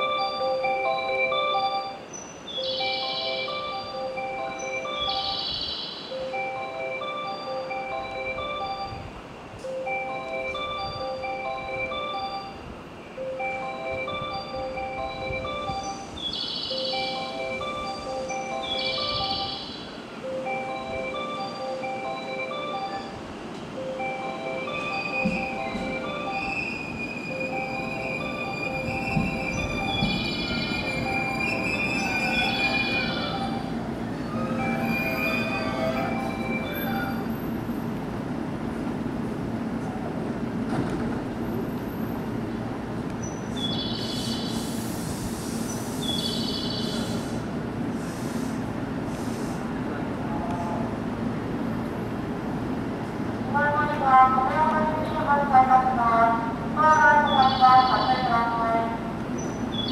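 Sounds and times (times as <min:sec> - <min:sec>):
electronic chime melody: 0:00.0 - 0:09.1, 0:09.7 - 0:37.4
train low running sound: 0:00.0 - 0:59.9
train wheels squealing: 0:24.7 - 0:37.5, 0:43.2 - 0:49.6, 0:59.3 - 0:59.9.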